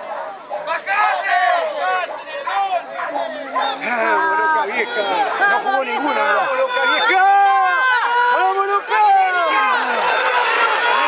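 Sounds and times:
men shouting and yelling: 0.0 - 11.0.

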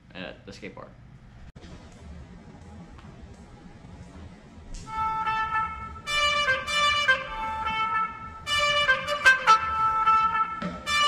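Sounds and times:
background music: 4.9 - 11.0.

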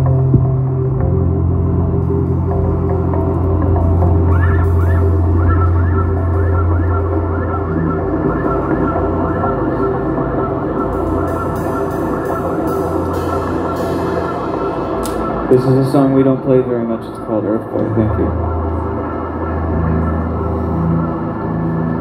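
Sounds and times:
low drone: 0.0 - 22.0
quick upward-sliding notes: 2.6 - 22.0.

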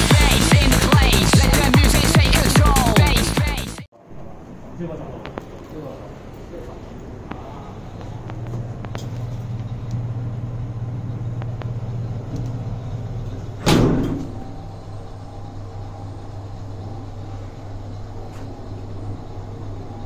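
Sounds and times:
lift low hum: 0.0 - 20.0
sliding doors shutting thud: 13.4 - 14.6.

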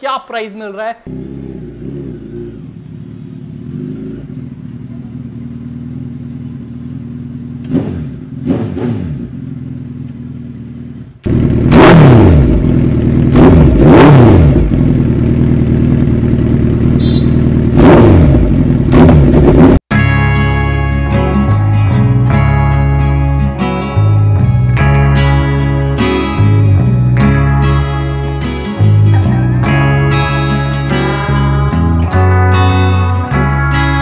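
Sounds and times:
motorcycle engine revving: 1.0 - 19.9
motorcycle engine idling: 1.1 - 8.5, 9.2 - 11.7, 12.4 - 13.8, 14.5 - 19.4.

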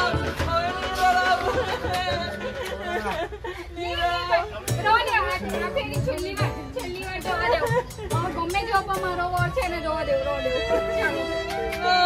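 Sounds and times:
background music with beat: 0.0 - 3.2, 4.6 - 10.2.

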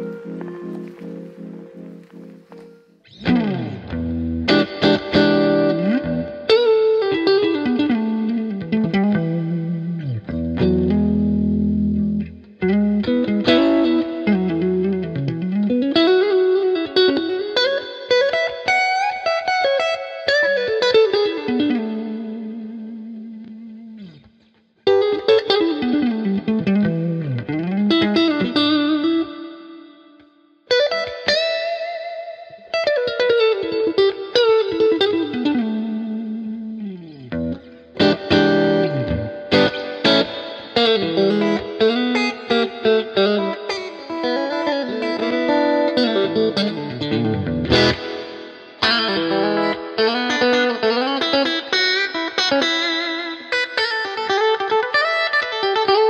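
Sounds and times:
electric guitar lead with string bends: 0.0 - 56.0.

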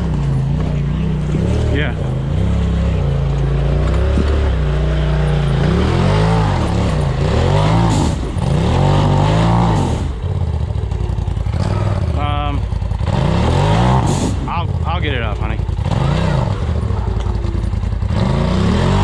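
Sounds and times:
vehicle engine revving: 0.0 - 19.0.

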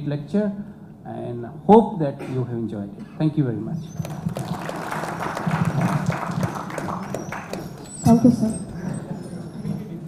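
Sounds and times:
audience applauding: 3.9 - 9.1.

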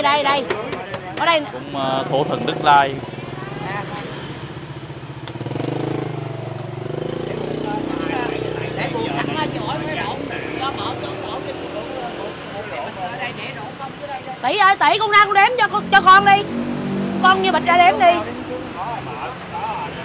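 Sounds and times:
quiet chatter of voices: 0.0 - 5.2
motorbike engines running: 0.0 - 20.0.

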